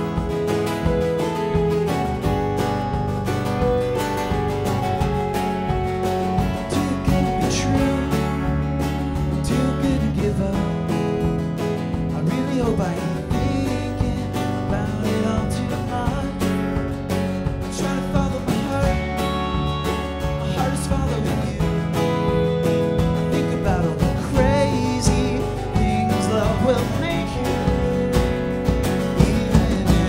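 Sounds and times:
bass guitar: 0.0 - 30.0
drums: 0.0 - 30.0
electric guitar lead: 0.0 - 30.0
strummed acoustic guitar: 0.0 - 30.0.

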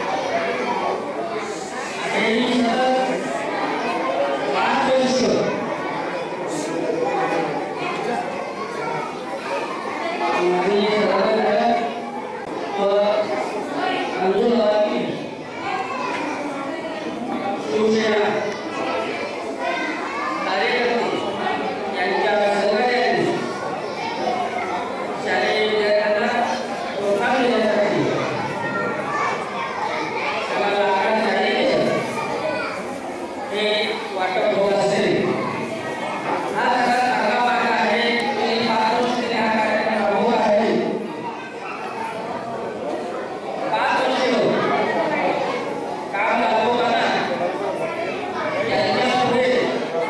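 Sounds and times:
children chattering: 0.0 - 50.0
man speaking over public address: 1.4 - 3.5, 4.3 - 5.8, 10.2 - 15.3, 17.6 - 18.8, 20.4 - 23.7, 25.2 - 28.8, 30.3 - 32.3, 33.4 - 35.8, 36.4 - 41.4, 43.4 - 50.0.

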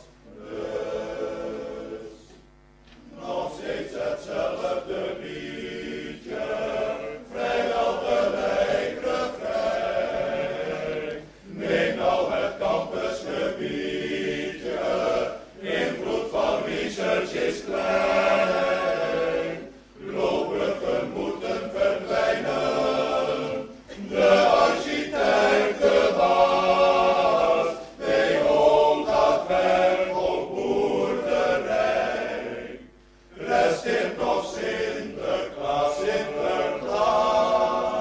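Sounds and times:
choir singing: 0.0 - 2.4, 3.0 - 38.0.

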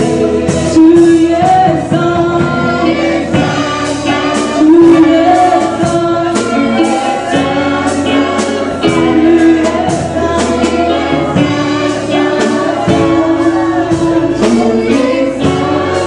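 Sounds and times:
group singing gospel song: 0.0 - 16.0
steady drum beat: 0.0 - 16.0.

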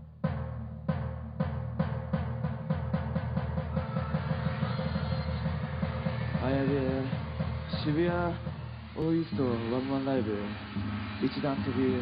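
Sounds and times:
accelerating drum hits: 0.2 - 12.0.

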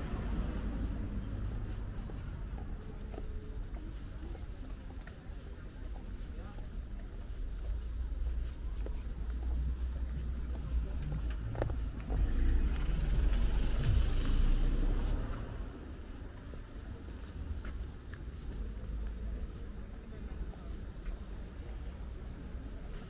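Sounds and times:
traffic rumble: 0.0 - 23.0
car passing: 11.2 - 16.3.

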